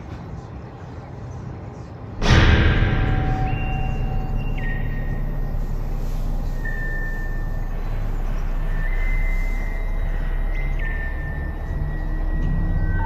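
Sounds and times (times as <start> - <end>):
low rumble: 2.2 - 13.0
train wheels squealing on rails: 2.6 - 13.0.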